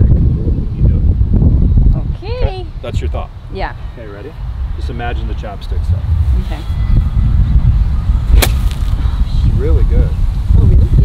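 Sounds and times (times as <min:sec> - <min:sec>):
steady low rumble: 0:00.0 - 0:11.0
golf club striking ball: 0:08.3 - 0:09.0.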